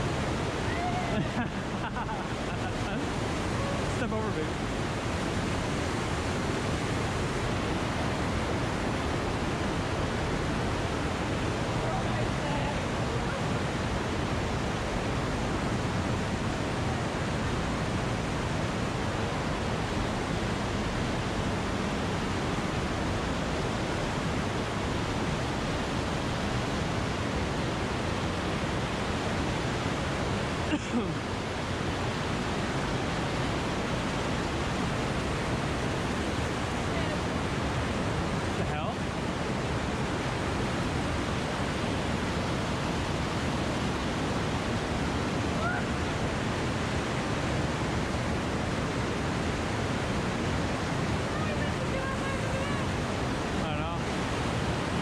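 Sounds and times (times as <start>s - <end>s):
river rushing over boulders: 0.0s - 55.0s.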